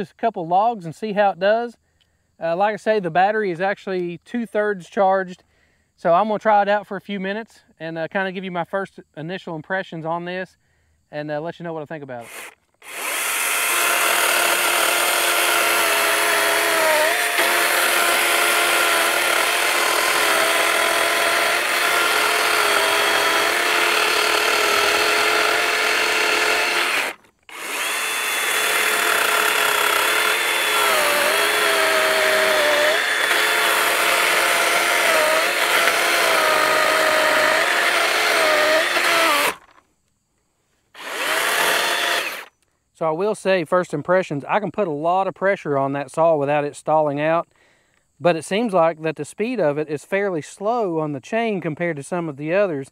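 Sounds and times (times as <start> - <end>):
electric chainsaw cutting log: 12.2 - 39.8, 41.0 - 42.5.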